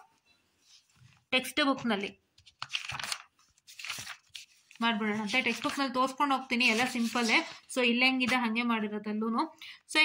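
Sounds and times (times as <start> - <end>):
paper pages rustling: 0.6 - 8.4.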